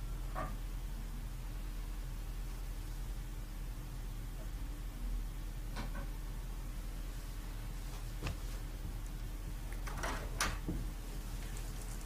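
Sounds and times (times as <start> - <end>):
low mains hum: 0.0 - 12.0.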